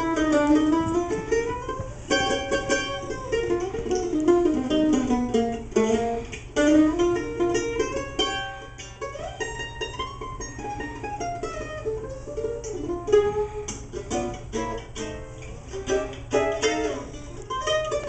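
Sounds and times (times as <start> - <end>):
mandolin tremolo solo: 0.0 - 18.0.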